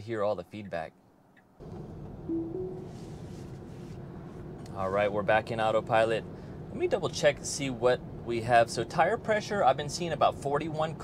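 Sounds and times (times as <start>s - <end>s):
road and tyre noise in car cabin: 1.3s - 11.0s
short low tone: 2.3s - 3.1s.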